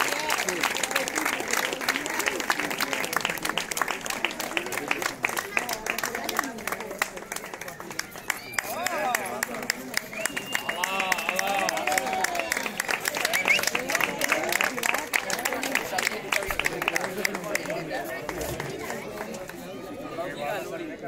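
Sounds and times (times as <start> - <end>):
audience applauding: 0.0 - 19.8
voices talking and calling out: 0.0 - 21.0.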